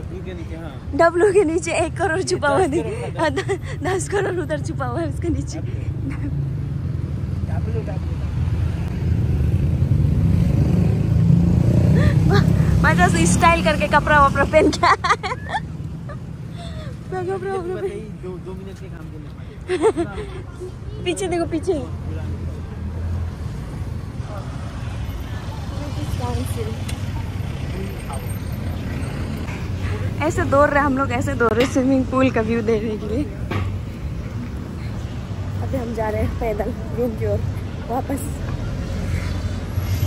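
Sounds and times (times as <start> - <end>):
city street rumble: 0.0 - 40.0.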